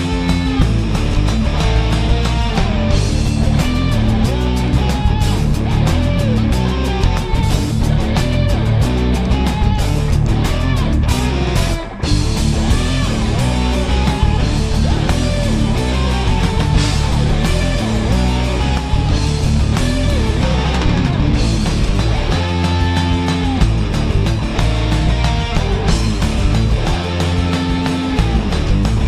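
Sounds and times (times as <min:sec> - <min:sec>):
live rock band playing: 0:00.0 - 0:29.0.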